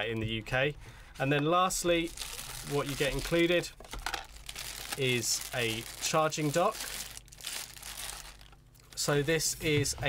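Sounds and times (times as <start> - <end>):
plastic bag crinkling: 2.0 - 9.5.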